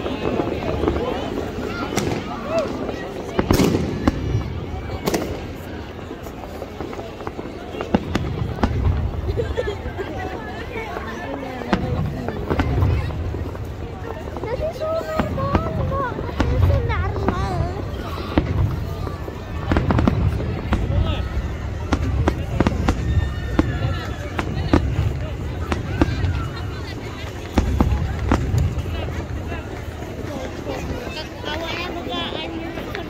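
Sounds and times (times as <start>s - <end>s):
fireworks bangs: 0.0s - 33.0s.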